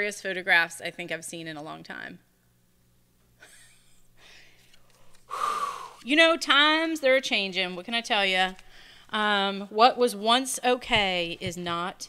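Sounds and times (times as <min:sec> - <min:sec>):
woman exhaling breathily: 0:05.3 - 0:06.0.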